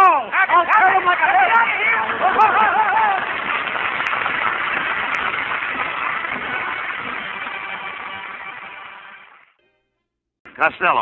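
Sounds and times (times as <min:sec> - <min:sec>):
audience applause: 0:00.0 - 0:09.5
audience laughter: 0:02.2 - 0:03.3.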